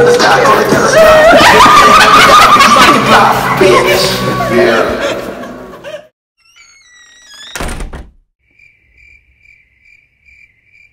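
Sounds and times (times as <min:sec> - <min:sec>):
crickets chirping: 0:08.4 - 0:10.9.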